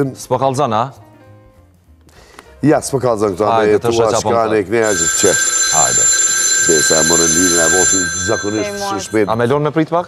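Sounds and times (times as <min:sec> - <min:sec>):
voices talking: 0:04.8 - 0:09.5
telephone bell ringing: 0:04.8 - 0:09.7.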